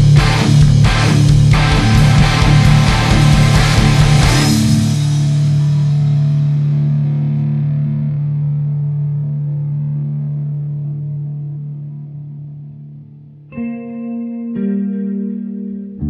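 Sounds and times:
rock band playing: 0.0 - 7.9
low hum: 0.0 - 13.6
distorted guitar chord ringing: 0.0 - 16.0.

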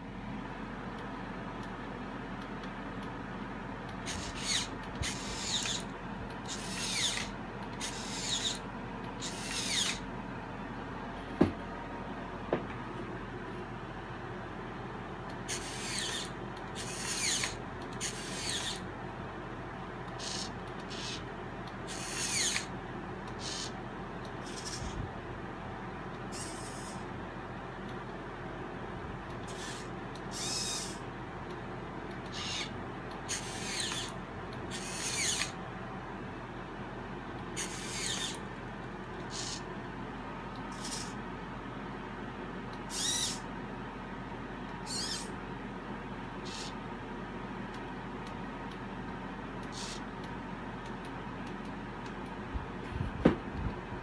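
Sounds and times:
steady low hum: 0.0 - 54.0
servos whirring: 3.8 - 10.1, 15.3 - 18.9, 20.0 - 25.0, 26.2 - 27.1, 29.3 - 31.0, 32.1 - 35.6, 37.4 - 39.7, 40.5 - 41.2, 42.8 - 43.4, 44.8 - 45.3, 46.4 - 46.8, 49.6 - 50.1.

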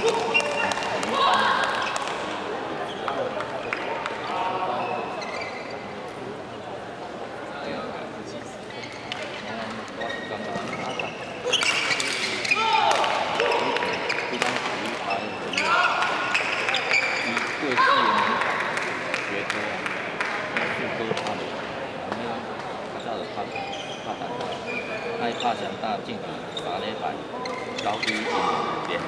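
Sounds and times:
shoes squeaking on court floor: 0.0 - 6.0, 8.6 - 17.5, 22.6 - 25.8, 26.4 - 29.0
voices in a hall: 0.0 - 29.0.

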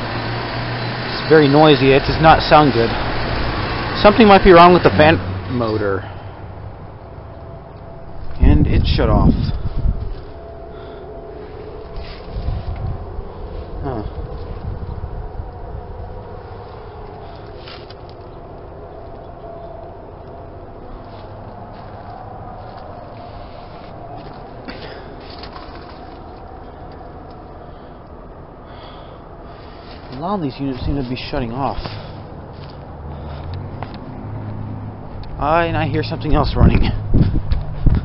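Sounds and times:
heat pump units humming: 0.0 - 38.0
wind rumble on microphone: 6.4 - 24.7, 30.7 - 38.0.

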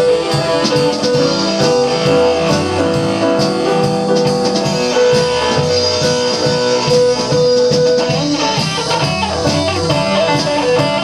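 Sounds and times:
blues band playing: 0.0 - 11.0
electric guitar: 0.0 - 11.0
steady drum beat: 0.0 - 11.0.

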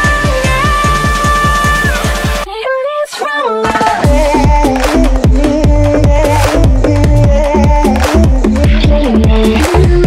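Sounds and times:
fast bass drum beat: 0.0 - 2.5, 3.7 - 10.0.

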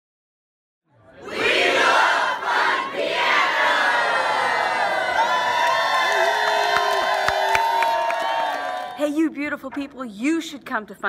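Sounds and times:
crowd cheering and shouting: 1.2 - 9.1.

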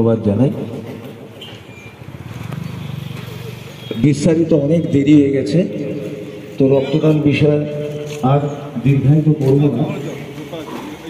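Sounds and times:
motorcycle engine running: 2.0 - 4.0.

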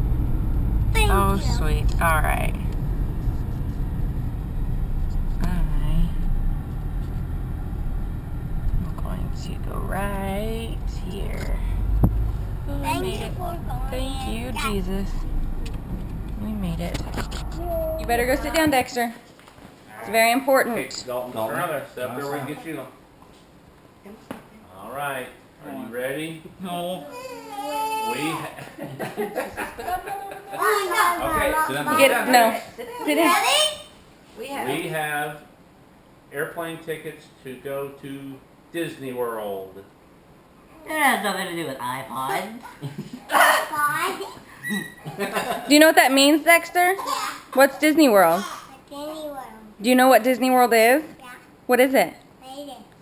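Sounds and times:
car driving rumble inside cabin: 0.0 - 18.8
person speaking: 1.0 - 2.7, 12.7 - 15.4, 16.2 - 18.9
young child whining cry: 27.1 - 28.5.

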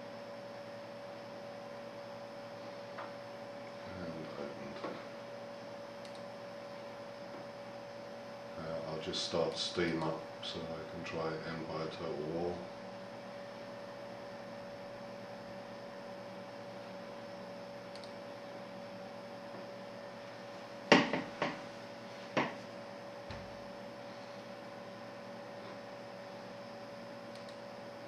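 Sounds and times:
steady electrical hum: 0.0 - 28.0
sharp knocks: 20.9 - 21.6.

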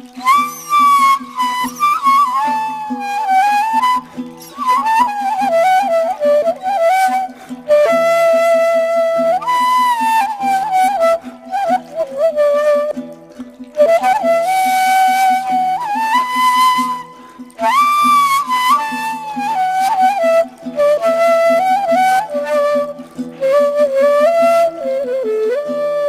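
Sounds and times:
flute playing slow melody: 0.0 - 26.0.

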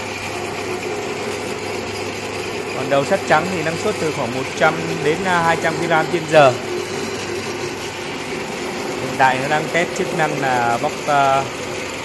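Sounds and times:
low motor hum: 0.0 - 12.0
rice mill running: 0.0 - 12.0.

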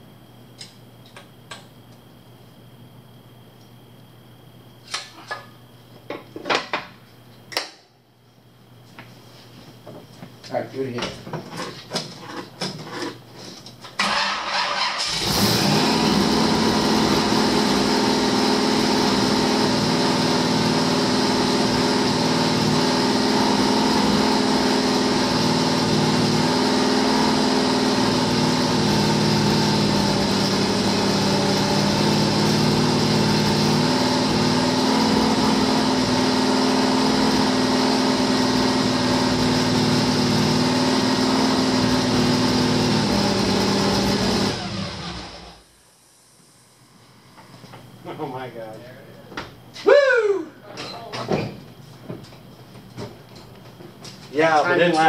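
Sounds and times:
engine cranking: 14.0 - 15.8
engine running at fast idle: 14.0 - 46.8.

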